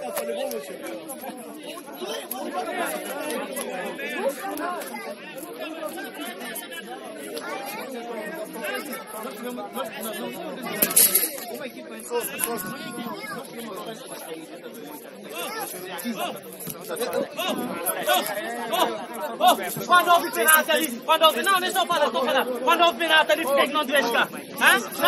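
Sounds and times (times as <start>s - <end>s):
background chatter of voices: 0.0s - 25.0s.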